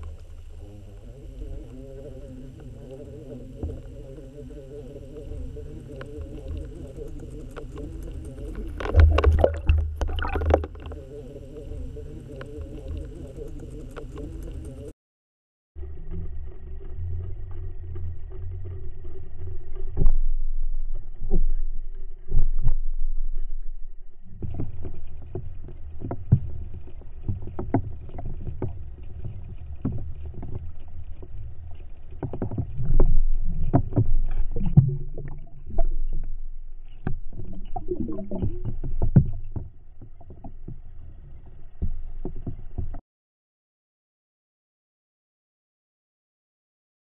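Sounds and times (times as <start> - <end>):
underwater churning rumble: 0.0 - 14.9, 15.8 - 43.0.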